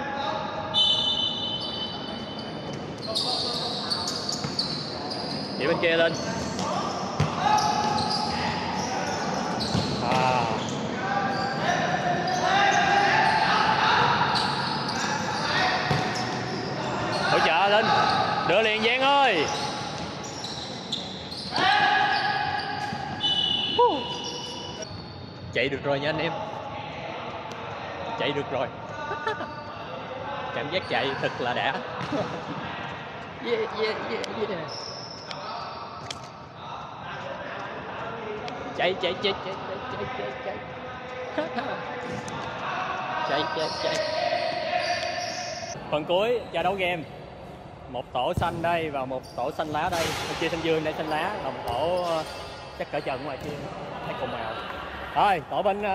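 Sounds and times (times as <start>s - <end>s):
shoes squeaking: 0.8s - 13.6s, 14.3s - 25.3s, 48.3s - 55.0s
players shouting: 6.1s - 20.7s.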